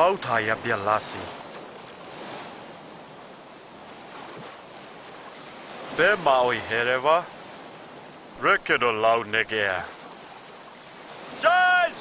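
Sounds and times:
sea waves: 0.0 - 12.0
wind at the shore: 0.0 - 12.0.

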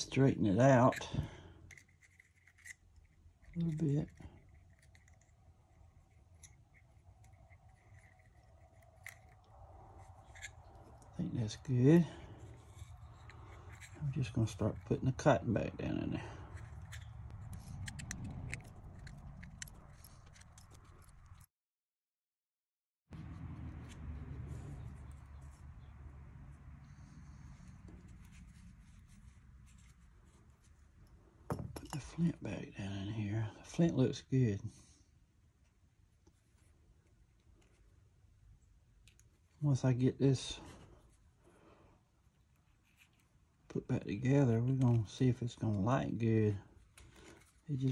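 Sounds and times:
faint metal clicks and scratches: 0.9 - 15.3, 16.4 - 21.5
steady low rumble: 5.2 - 21.3.

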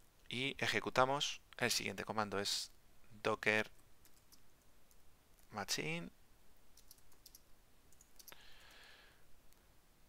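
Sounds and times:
computer keyboard typing: 4.0 - 5.0, 6.8 - 8.8.

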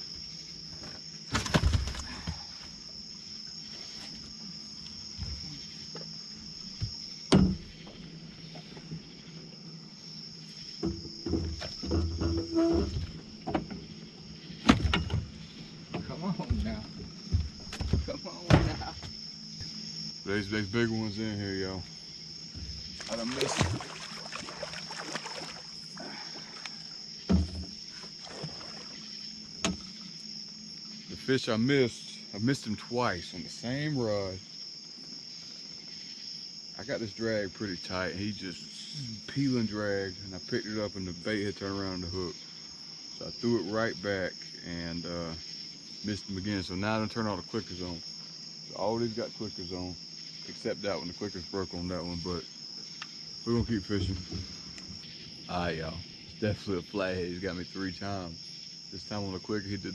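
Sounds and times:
crickets chirring: 0.0 - 59.9
high insect trill: 0.0 - 59.9
knocks on metal boat: 6.8 - 7.7
heavy thump: 6.8 - 8.0, 14.6 - 19.2.

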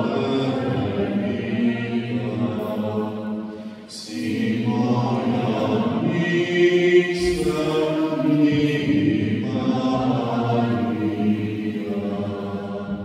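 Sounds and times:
group singing a hymn: 0.0 - 13.0.

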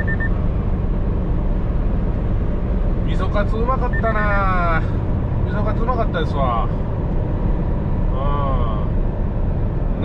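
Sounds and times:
truck engine and tyres rumbling: 0.0 - 10.0.

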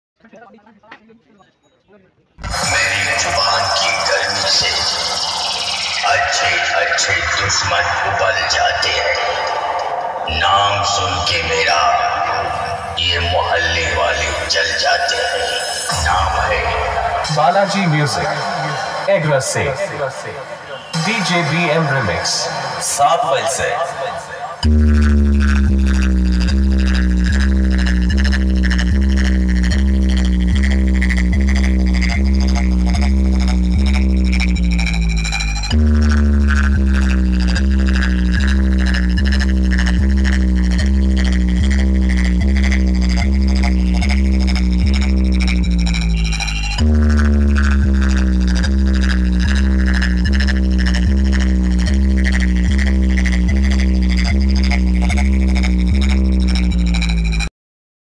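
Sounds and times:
falling synth sweep: 2.4 - 34.5
heavy bass drone: 2.4 - 57.5
loud electronic dance music: 2.4 - 57.5.

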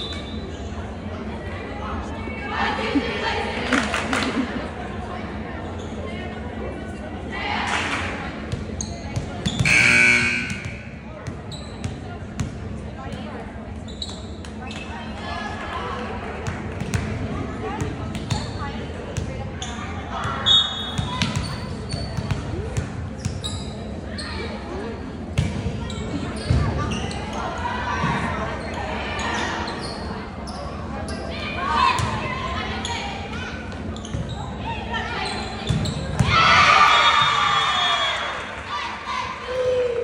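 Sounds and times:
volleyball being struck: 9.6 - 10.9
players calling: 9.6 - 11.1
shouting and cheering: 36.2 - 40.0.

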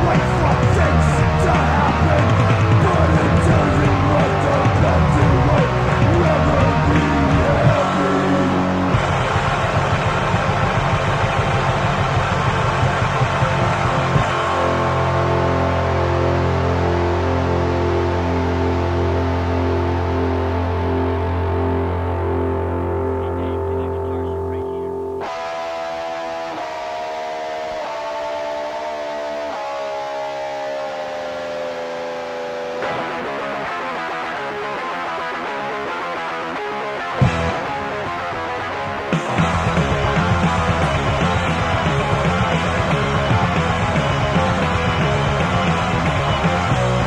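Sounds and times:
hardcore punk band playing: 0.0 - 24.0, 25.0 - 47.0
ringing low guitar chord: 0.0 - 35.8, 37.2 - 47.0.

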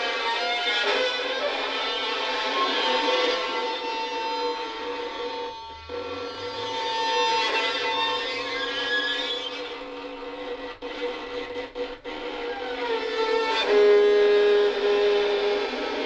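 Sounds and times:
violin duet sustained notes: 0.0 - 16.0.

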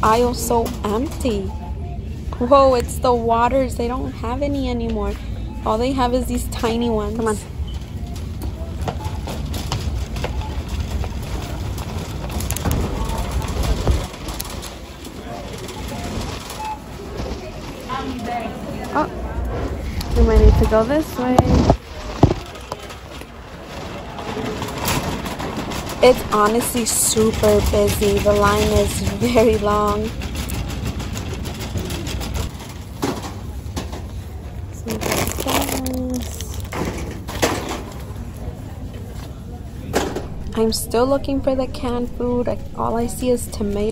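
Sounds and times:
faint chatter of shoppers: 0.0 - 43.9
shopping cart wheels rumbling: 2.4 - 43.9
cart clicks and rattles: 7.2 - 18.3, 20.4 - 34.3.

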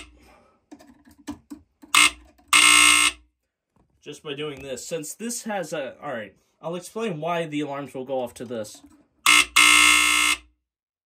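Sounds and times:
smoke alarm beeping: 2.0 - 3.2, 9.3 - 10.4.

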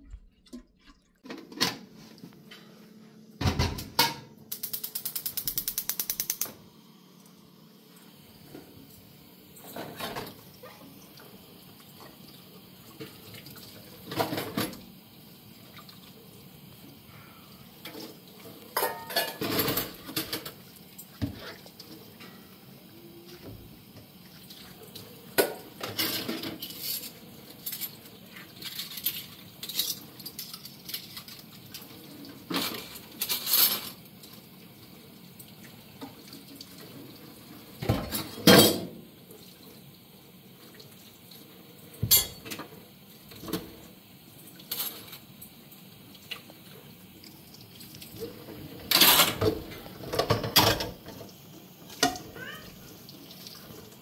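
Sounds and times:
dishes and cutlery clattering in sink: 0.0 - 2.8, 3.4 - 4.4, 9.6 - 11.0, 12.9 - 14.9, 17.8 - 22.5, 24.6 - 34.0, 37.8 - 39.0, 41.9 - 43.9, 44.6 - 45.2, 48.1 - 52.7.

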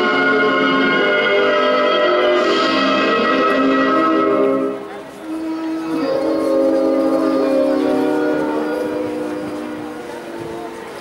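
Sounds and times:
horn-like chord: 0.0 - 9.6.

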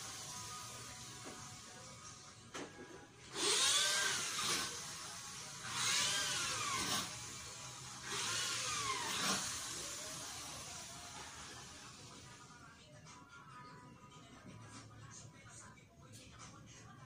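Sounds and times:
small motor whirring: 3.3 - 12.4.

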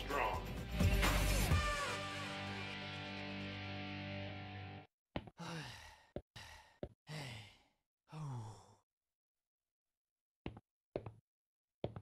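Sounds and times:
background music: 0.0 - 4.8.

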